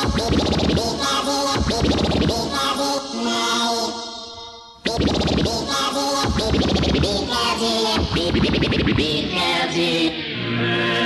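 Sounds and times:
fast hardcore dance music: 0.0s - 2.6s, 4.8s - 9.4s.

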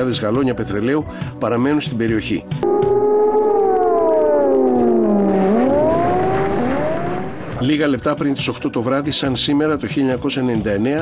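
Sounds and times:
air-raid siren wailing: 2.6s - 7.6s.

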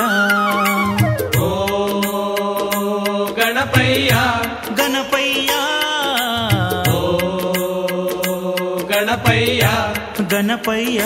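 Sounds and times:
instrumental accompaniment: 0.0s - 3.5s
percussion strokes: 0.0s - 11.0s.

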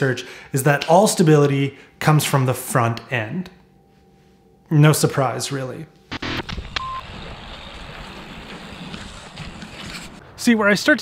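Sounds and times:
short beep: 6.2s - 7.1s.

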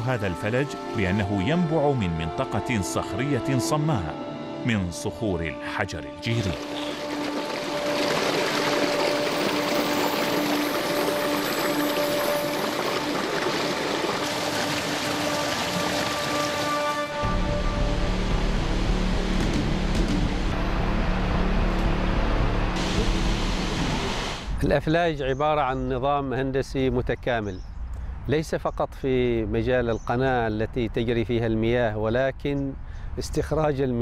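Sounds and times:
background music with held notes: 0.0s - 23.5s
water splashing over rocks: 6.3s - 17.1s
deep bass part: 17.2s - 24.8s.

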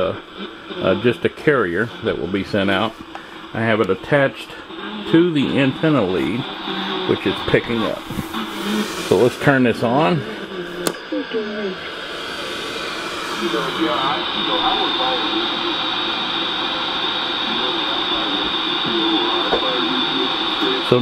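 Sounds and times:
radio static hiss: 0.0s - 21.0s
voices over radio speaker: 0.0s - 21.0s.

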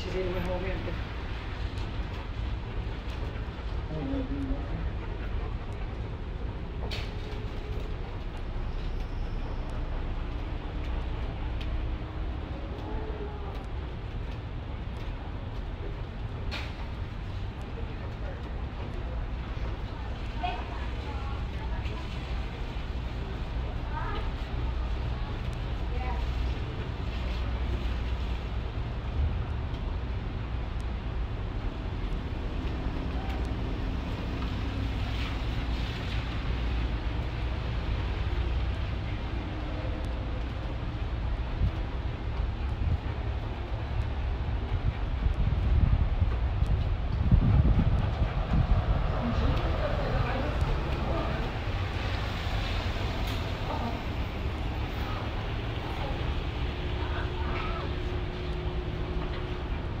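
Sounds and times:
outdoor traffic noise: 0.0s - 60.0s
wind rumbling on microphone: 0.0s - 60.0s.

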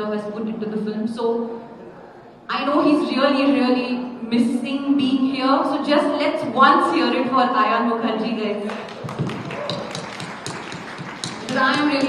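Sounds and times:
audience applause: 8.7s - 12.0s.

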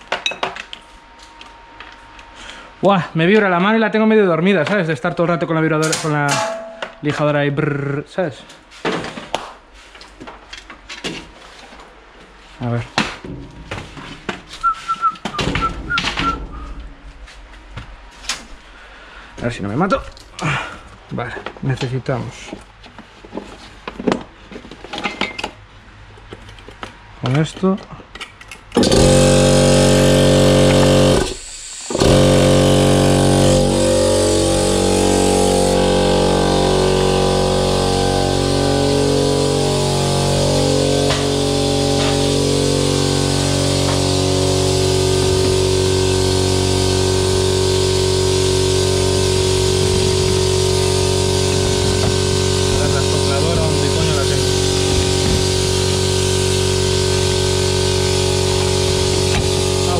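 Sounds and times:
electric air compressor running: 28.8s - 59.9s.

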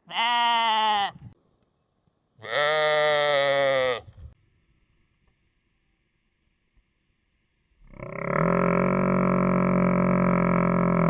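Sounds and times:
sheep bleating: 0.0s - 1.2s, 2.4s - 4.1s.

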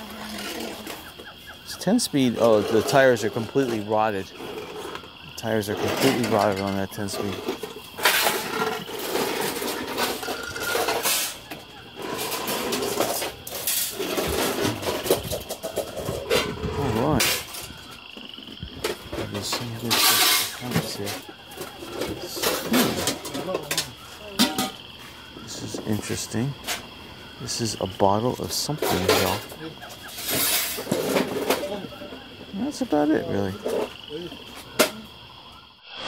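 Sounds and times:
indistinct talking: 0.0s - 35.5s.

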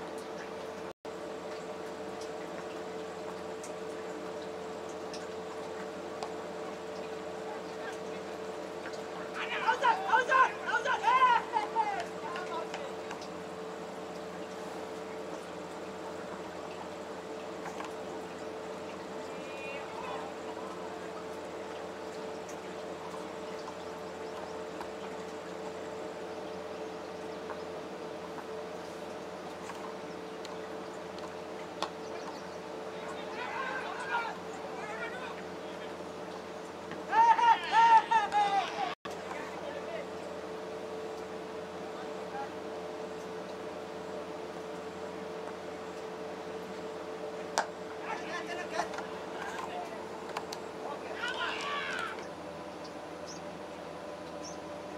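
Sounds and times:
constant low hum: 0.0s - 54.9s.

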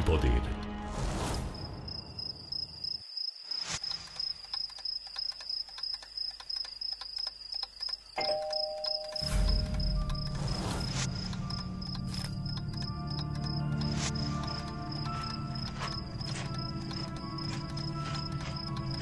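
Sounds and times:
crickets chirping: 1.3s - 19.0s
doorbell chime: 8.2s - 9.6s.

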